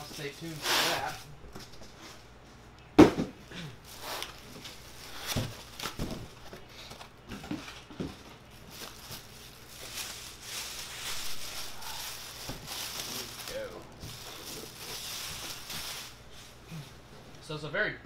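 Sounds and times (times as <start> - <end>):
plastic bag crinkling: 3.8 - 17.1.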